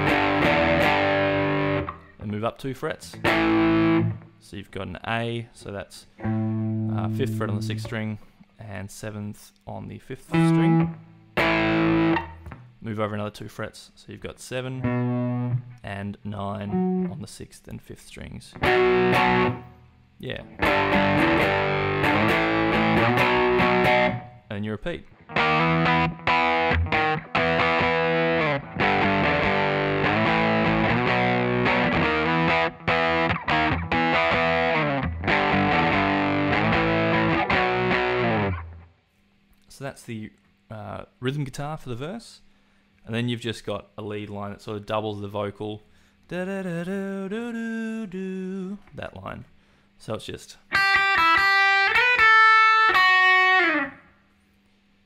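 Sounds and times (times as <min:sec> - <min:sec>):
distorted electric guitar power chords: 0:00.0 - 0:02.2, 0:03.1 - 0:04.3, 0:06.2 - 0:08.0, 0:10.3 - 0:12.8, 0:14.8 - 0:15.8, 0:16.6 - 0:17.2, 0:18.6 - 0:19.8, 0:20.4 - 0:24.5, 0:25.1 - 0:38.9, 0:50.8 - 0:54.0.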